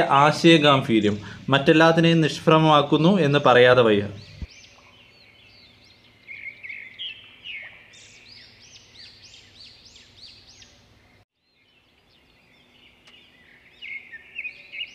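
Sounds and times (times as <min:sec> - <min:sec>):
birds chirping: 0:00.0 - 0:14.9.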